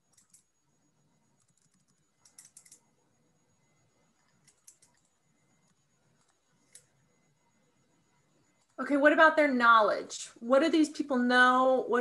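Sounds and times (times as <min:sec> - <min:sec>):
faint keyboard typing: 0:00.0 - 0:08.8.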